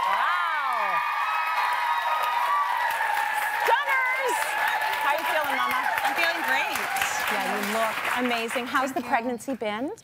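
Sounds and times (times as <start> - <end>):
audience cheering and clapping: 0.0 - 9.0.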